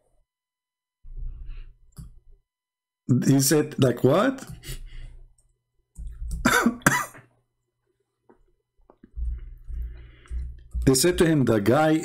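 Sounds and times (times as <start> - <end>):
man coughing and clearing throat: 6.4 - 7.4.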